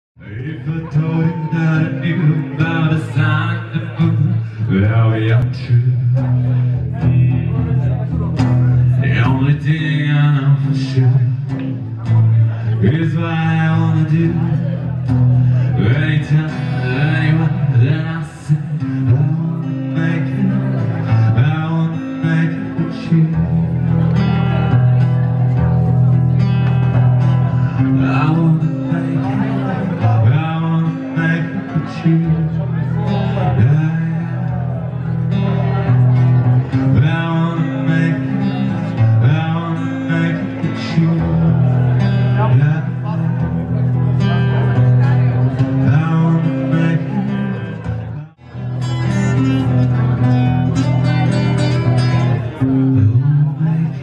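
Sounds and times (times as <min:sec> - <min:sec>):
man singing: 0:00.2 - 0:54.0
strummed acoustic guitar: 0:00.2 - 0:54.0.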